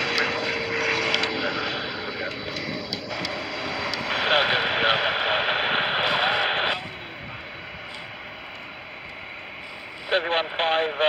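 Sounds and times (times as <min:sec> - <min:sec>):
hissy radio chatter: 0:03.2 - 0:08.1, 0:09.6 - 0:11.0.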